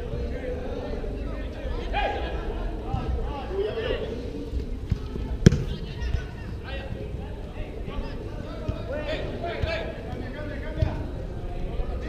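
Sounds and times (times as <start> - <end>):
ball kicked with thud: 4.9 - 6.2.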